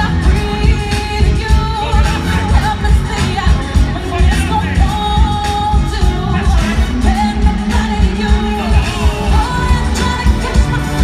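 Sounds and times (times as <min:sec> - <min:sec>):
full band with heavy bass beat: 0:00.0 - 0:11.0
woman singing lead: 0:00.0 - 0:11.0.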